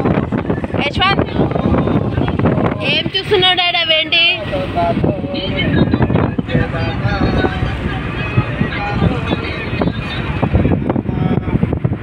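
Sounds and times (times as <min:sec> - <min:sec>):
engine and road rumble: 0:00.0 - 0:12.0
voices: 0:00.0 - 0:12.0
wind buffeting: 0:00.0 - 0:12.0.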